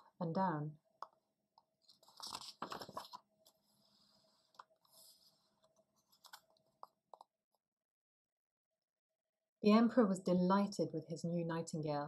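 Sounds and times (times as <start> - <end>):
paper page rustling: 1.8 - 3.6, 6.0 - 6.6.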